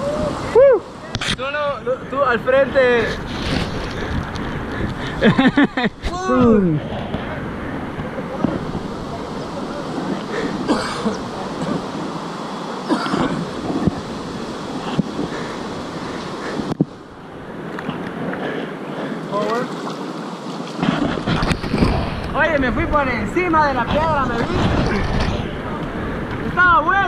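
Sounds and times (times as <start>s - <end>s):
wind buffeting microphone: 0.0s - 19.0s, 20.3s - 27.0s
river water rushing: 0.0s - 27.0s
paddle splashes: 6.0s - 22.4s.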